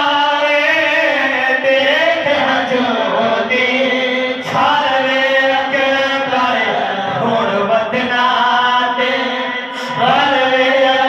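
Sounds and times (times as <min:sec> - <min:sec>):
men chanting into microphones: 0:00.0 - 0:11.0.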